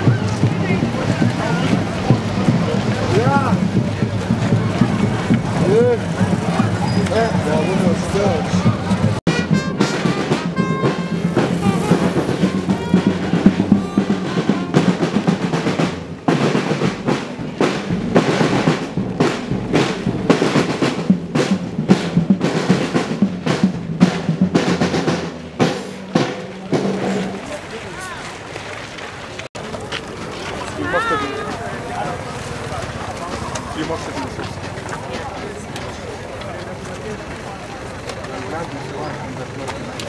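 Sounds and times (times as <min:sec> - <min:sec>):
marching snare and bass drums: 0:00.0 - 0:28.4, 0:30.8 - 0:40.0.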